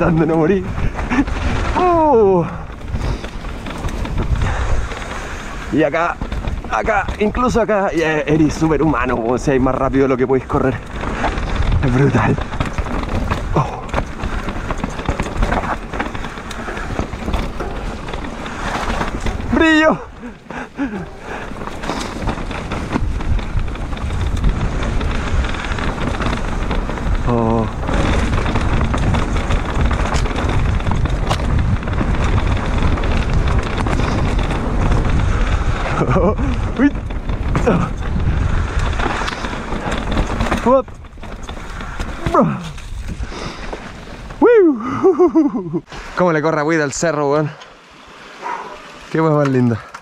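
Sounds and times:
wind rushing over microphone: 0.0s - 47.0s
bike rattling over bumps: 0.0s - 50.0s
bike tyres rolling on dirt: 0.0s - 50.0s
rider whooping: 44.4s - 45.8s.

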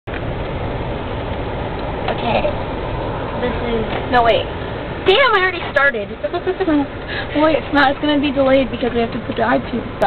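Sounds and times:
road and engine noise in car: 0.1s - 10.0s.

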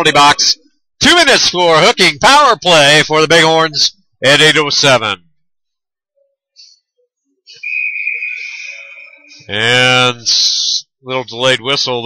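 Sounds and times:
referee whistle blast: 7.5s - 9.5s.

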